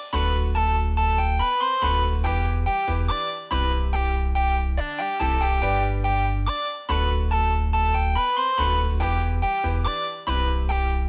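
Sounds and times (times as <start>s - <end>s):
electronic music with keyboard: 0.0s - 11.0s
heavy steady bass: 0.2s - 11.0s.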